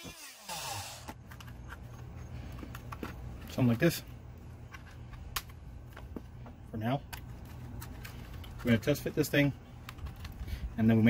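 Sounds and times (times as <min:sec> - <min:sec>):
steady low hum: 0:01.1 - 0:11.0.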